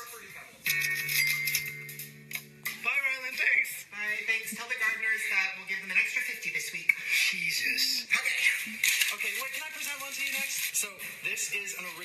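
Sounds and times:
person speaking: 0:07.3 - 0:12.0.

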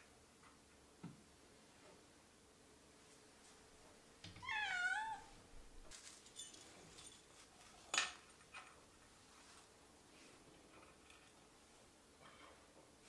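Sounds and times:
cat meowing: 0:04.4 - 0:05.3.

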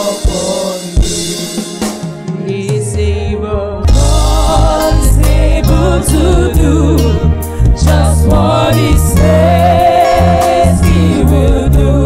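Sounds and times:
gospel band with bass line: 0:00.0 - 0:12.0
voices singing a held note: 0:07.8 - 0:12.0.

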